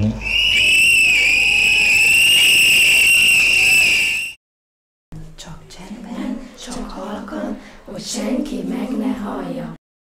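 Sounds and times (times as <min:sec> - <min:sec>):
whistle long high blast: 0:00.1 - 0:04.4.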